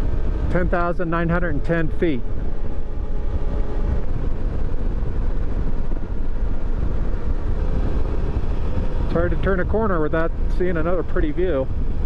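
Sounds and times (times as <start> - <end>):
motorcycle engine: 0.0 - 12.0
wind and road noise: 0.0 - 12.0.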